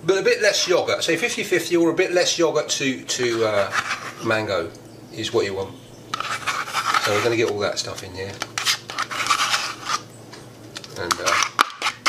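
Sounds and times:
yogurt scraped from plastic pot: 3.2s - 4.3s, 6.1s - 7.6s, 8.4s - 10.1s, 11.1s - 12.0s.

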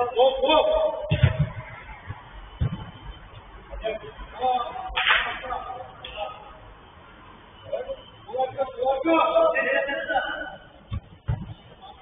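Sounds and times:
sharp smack of ball kicked: 1.1s - 1.7s, 10.9s - 11.6s.

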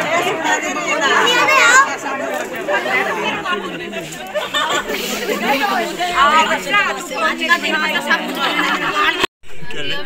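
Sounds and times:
overlapping voices chattering: 0.0s - 10.0s.

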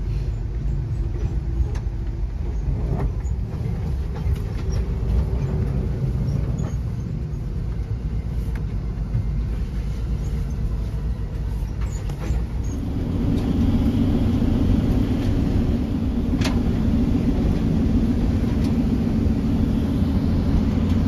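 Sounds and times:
car road noise rumble: 0.0s - 21.0s.

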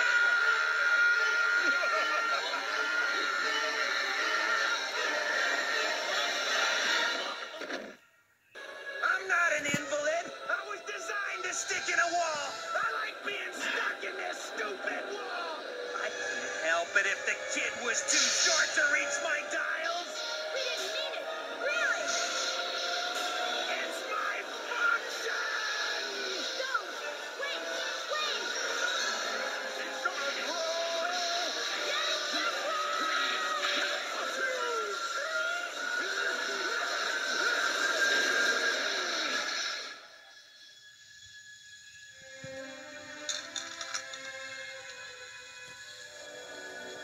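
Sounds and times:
cartoon music: 0.0s - 7.5s, 8.6s - 38.3s
character voices: 9.0s - 39.9s
sound effects: 15.7s - 40.4s.

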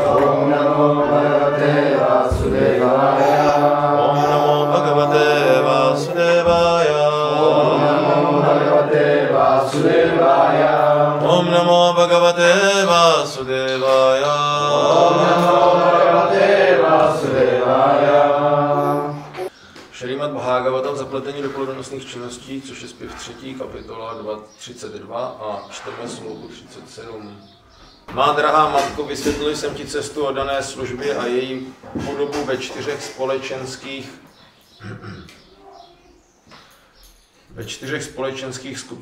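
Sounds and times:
man chanting prayers: 0.0s - 9.5s, 10.6s - 16.6s, 28.2s - 34.3s.

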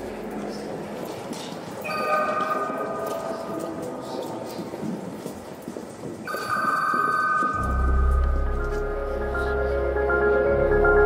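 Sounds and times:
bell-like ringing tone: 6.3s - 8.2s.

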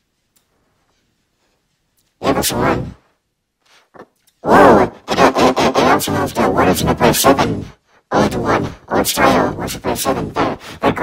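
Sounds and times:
person talking loudly: 2.2s - 3.0s, 4.4s - 11.0s.

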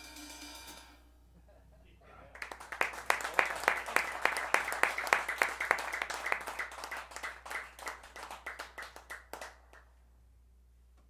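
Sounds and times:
small group clapping: 2.3s - 10.0s.

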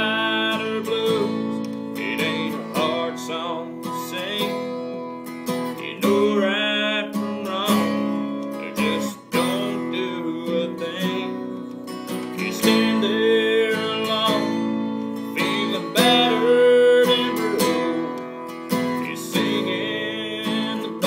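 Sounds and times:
man singing: 0.0s - 4.9s, 5.6s - 21.0s
strummed acoustic guitar: 0.0s - 21.0s.

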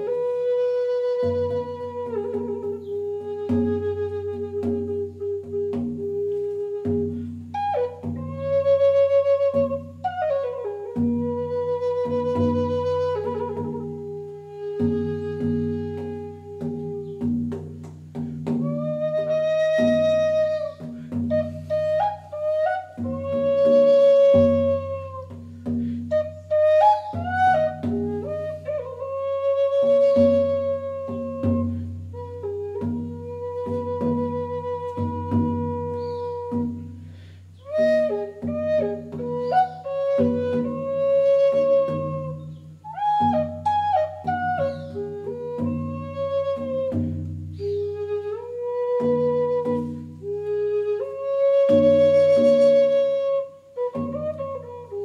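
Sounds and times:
flute playing slow melody: 0.0s - 55.0s.

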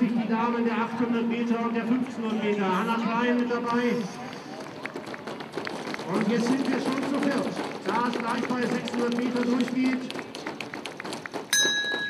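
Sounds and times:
running footsteps on track: 3.1s - 12.0s
bell ringing: 11.5s - 12.0s.

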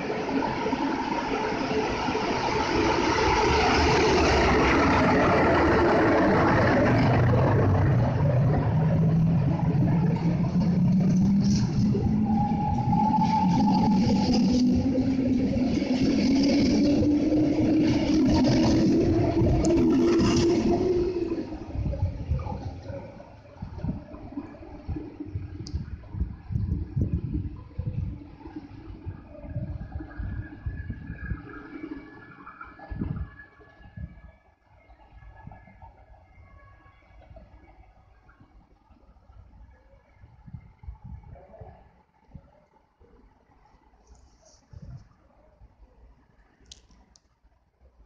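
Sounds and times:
locomotive drive hum rising: 0.0s - 34.1s
wheels rolling on rails: 0.0s - 34.3s.

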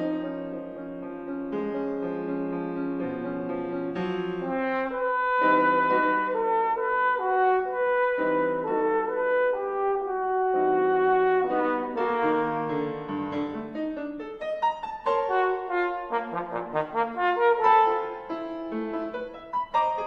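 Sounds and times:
trombone playing held notes: 4.4s - 12.9s, 15.2s - 18.4s.

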